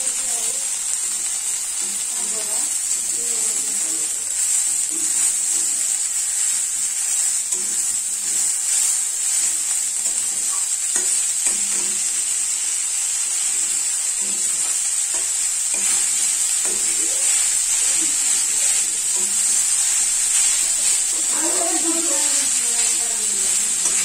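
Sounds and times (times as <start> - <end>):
vegetables sizzling in a pan: 0.0 - 24.0
metal spatula scraping a pan: 14.2 - 24.0.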